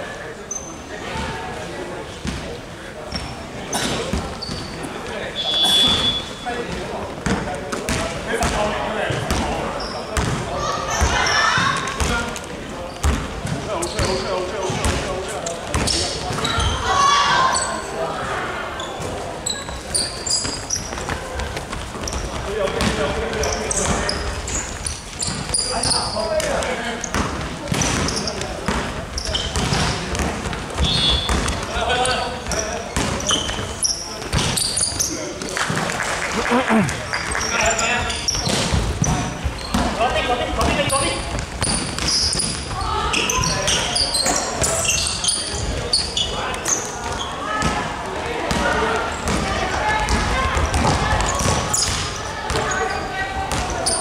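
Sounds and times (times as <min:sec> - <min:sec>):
players calling out: 0:36.0 - 0:54.0.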